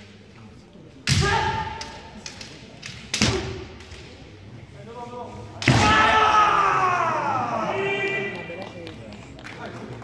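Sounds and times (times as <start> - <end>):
bamboo sword strikes: 2.9 - 4.0.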